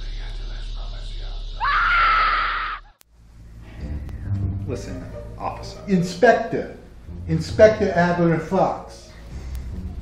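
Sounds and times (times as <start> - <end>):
woman screaming: 1.6 - 2.9
low steady hum: 3.0 - 10.0.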